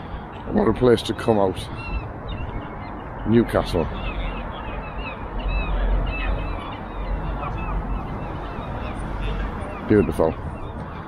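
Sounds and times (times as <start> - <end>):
many birds calling: 0.0 - 11.0.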